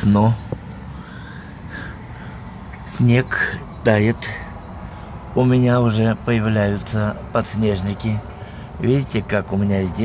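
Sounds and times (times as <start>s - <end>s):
distant city traffic rumble: 0.0s - 10.0s
faint bird chirps: 1.1s - 5.1s.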